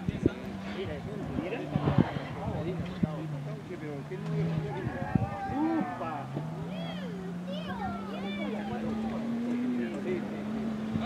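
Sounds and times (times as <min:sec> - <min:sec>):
spectators' voices: 0:00.0 - 0:10.8
truck engine running hard: 0:00.8 - 0:11.0.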